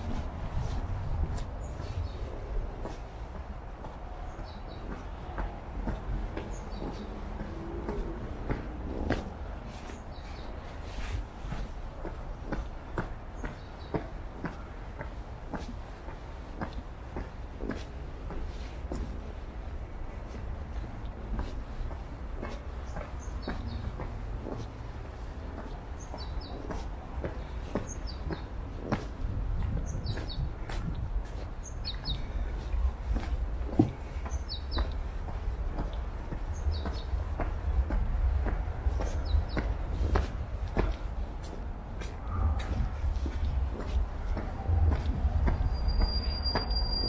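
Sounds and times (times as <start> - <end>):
footsteps on stone steps: 0.0 - 47.0
steady low rumble: 0.0 - 47.0
songbird chirping: 1.4 - 8.7, 20.7 - 47.0.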